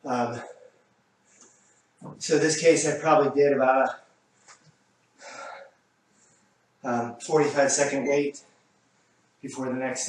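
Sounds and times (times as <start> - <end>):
speech: 0.0 - 0.6, 2.1 - 4.0, 6.8 - 8.4, 9.4 - 10.0.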